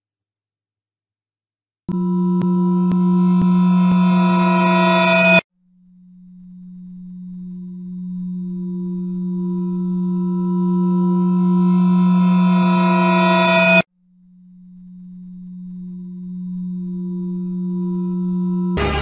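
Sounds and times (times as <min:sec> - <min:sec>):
electronic drone tone: 0:01.9 - 0:05.4, 0:06.0 - 0:19.0.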